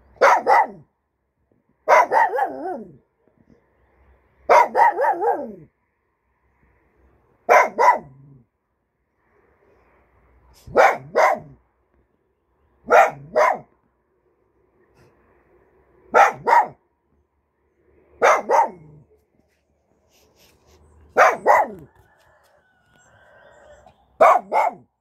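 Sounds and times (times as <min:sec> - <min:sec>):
small dog barking: 0:00.2 - 0:00.9, 0:01.8 - 0:03.0, 0:04.5 - 0:05.7, 0:07.5 - 0:08.4, 0:10.7 - 0:11.6, 0:12.8 - 0:13.8, 0:16.1 - 0:16.8, 0:18.2 - 0:19.1, 0:21.1 - 0:22.0, 0:24.2 - 0:24.9.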